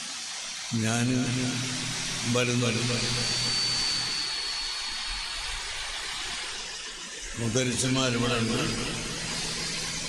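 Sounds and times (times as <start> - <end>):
faint high whine: 0.0 - 10.0
steady background hiss: 0.0 - 10.0.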